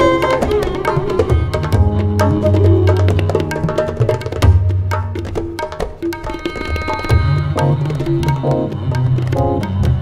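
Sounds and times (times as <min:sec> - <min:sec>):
tabla strokes: 0:00.0 - 0:10.0.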